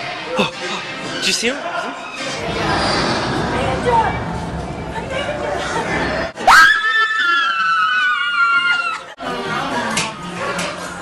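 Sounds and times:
people talking: 0:04.9 - 0:06.3.

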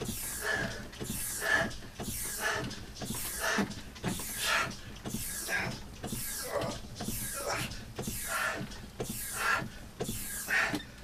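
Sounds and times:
man panting and grunting: 0:00.0 - 0:11.0
rowing machine hydraulic strokes: 0:00.0 - 0:11.0.

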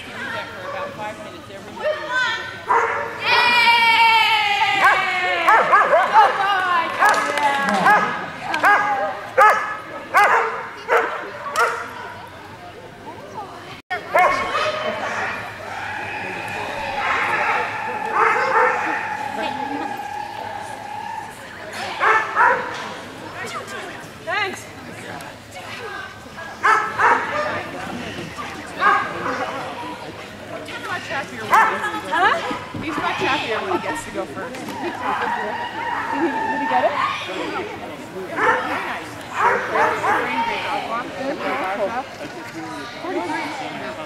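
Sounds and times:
dog howling: 0:04.1 - 0:09.6, 0:14.2 - 0:22.7, 0:34.8 - 0:37.2
dog yipping: 0:17.2 - 0:19.9.

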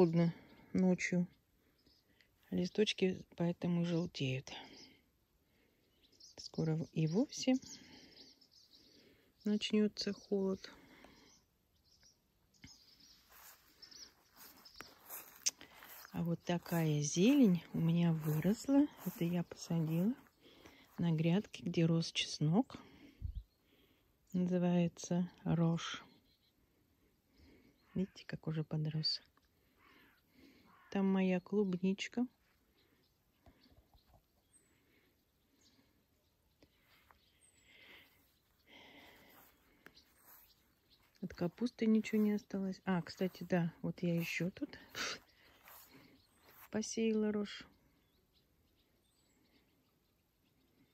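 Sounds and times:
faint bird chirps: 0:04.7 - 0:21.5, 0:25.8 - 0:50.9
soft rustling: 0:12.9 - 0:21.4, 0:36.6 - 0:46.8.

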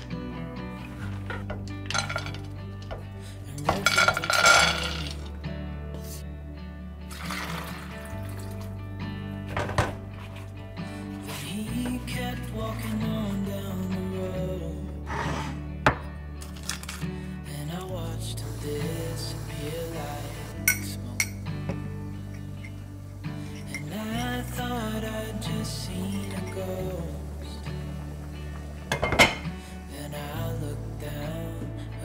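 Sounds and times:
background music: 0:00.0 - 0:32.0
ceramic drawer sliding out: 0:00.8 - 0:02.4, 0:15.1 - 0:15.6, 0:28.9 - 0:29.5
glass lid clinking on metal pot: 0:20.7 - 0:21.4, 0:28.9 - 0:29.4.

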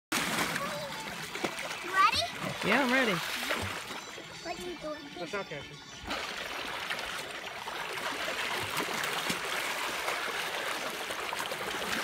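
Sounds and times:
water splashing and sloshing: 0:00.1 - 0:05.3, 0:05.9 - 0:12.0.

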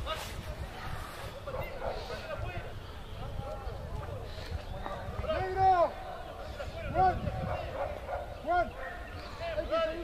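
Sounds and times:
dog barking: 0:01.7 - 0:02.2, 0:07.4 - 0:08.4.

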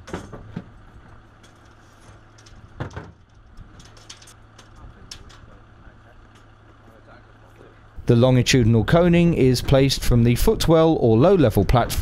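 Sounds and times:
outdoor background noise: 0:00.0 - 0:12.0
truck engine idling: 0:00.0 - 0:12.0.

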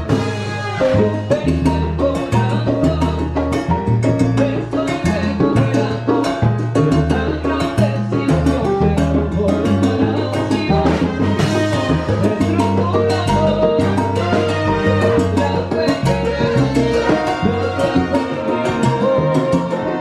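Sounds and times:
bass line: 0:00.0 - 0:20.0
congas and timbales: 0:00.0 - 0:20.0
salsa band playing: 0:00.0 - 0:20.0.

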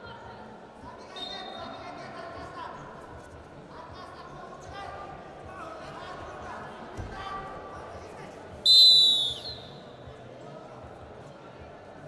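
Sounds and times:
referee's whistle blast: 0:08.7 - 0:09.8.

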